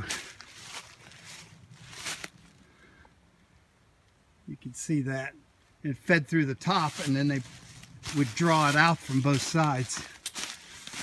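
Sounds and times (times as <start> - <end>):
footsteps crunching dry leaves: 0.0 - 2.6, 6.6 - 11.0.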